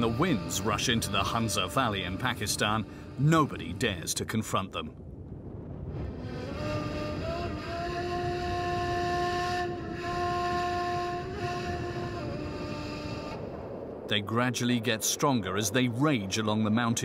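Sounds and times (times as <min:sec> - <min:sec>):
strong wind howling: 0:00.0 - 0:17.0.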